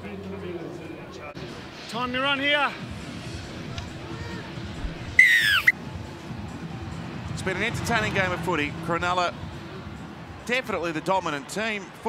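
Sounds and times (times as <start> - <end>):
stadium crowd noise: 0.0 - 12.0
referee's whistle blast: 5.2 - 5.8.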